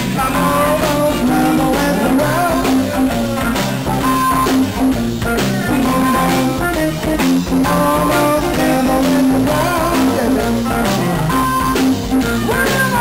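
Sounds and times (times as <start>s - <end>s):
drum kit: 0.0s - 13.0s
electric guitars: 0.0s - 13.0s
walking bass line: 0.0s - 13.0s
harmonica: 0.4s - 13.0s.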